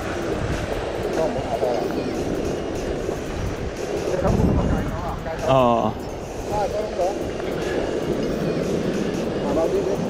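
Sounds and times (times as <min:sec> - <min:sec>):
sea washing against rocks: 0:00.0 - 0:05.4
wind: 0:00.0 - 0:10.0.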